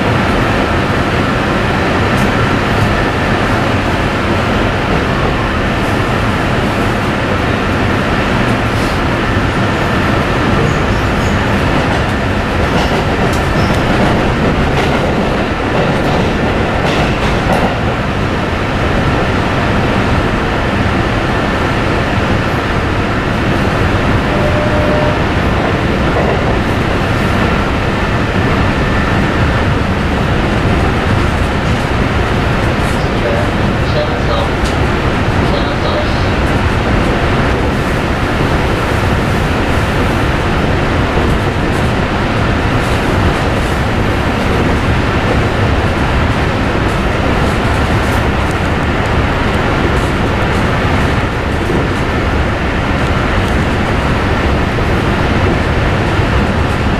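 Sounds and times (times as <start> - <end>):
train wheels rumbling on rails: 0.0 - 56.9.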